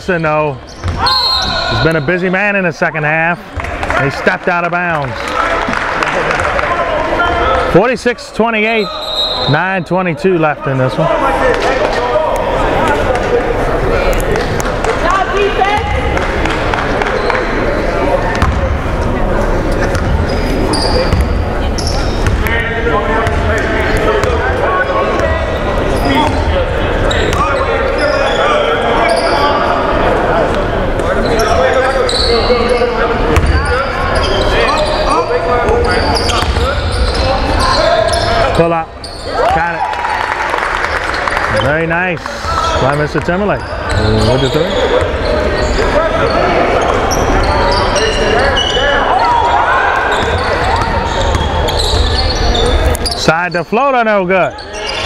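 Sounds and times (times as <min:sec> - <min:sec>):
indistinct voices: 0:43.6 - 0:53.3.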